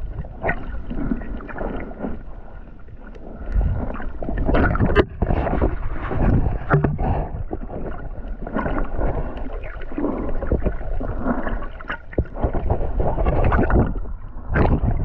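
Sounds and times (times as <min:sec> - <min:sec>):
muffled underwater water gurgling: 0:00.0 - 0:15.0
knocks and clicks: 0:06.7 - 0:07.1.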